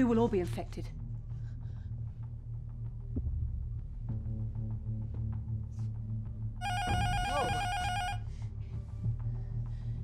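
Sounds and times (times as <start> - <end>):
low droning music: 0.0 - 10.0
telephone ringing: 6.6 - 8.2.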